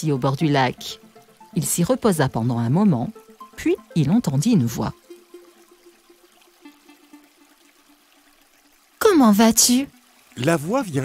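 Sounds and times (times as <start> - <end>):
trickling splashing water: 0.0 - 11.0.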